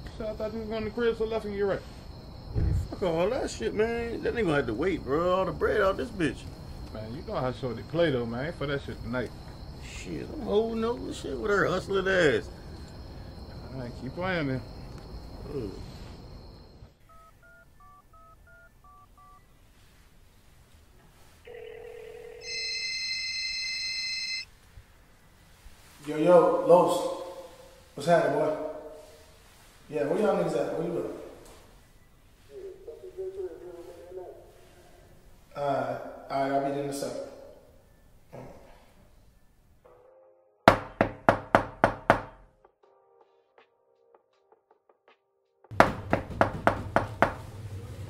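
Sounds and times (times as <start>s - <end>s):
phone keypad beeps: 17.1s - 19.4s, 21.5s - 24.5s
telephone ringing tone: 17.1s - 19.4s, 21.4s - 24.5s
knuckles knocking on door: 40.7s - 42.4s, 45.7s - 47.4s.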